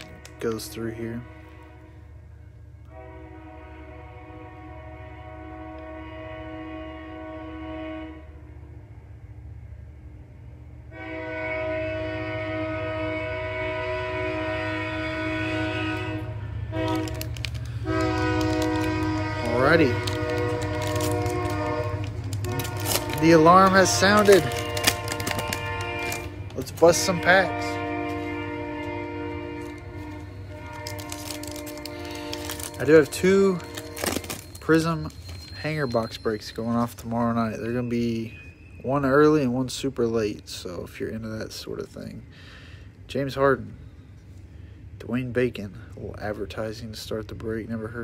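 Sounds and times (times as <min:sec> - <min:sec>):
train horn blasts: 0:00.0 - 0:08.8, 0:10.8 - 0:39.6
passing train rumble: 0:00.0 - 0:48.0.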